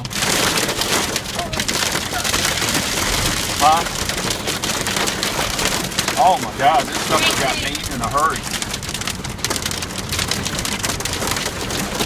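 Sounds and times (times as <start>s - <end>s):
heavy rain on a truck roof: 0.0s - 12.0s.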